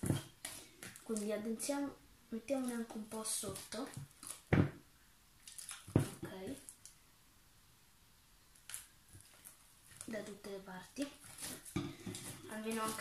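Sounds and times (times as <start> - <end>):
hands kneading slime: 0.0 - 4.6, 8.6 - 13.0
slime squelching: 0.0 - 4.6, 5.4 - 7.0, 8.6 - 13.0.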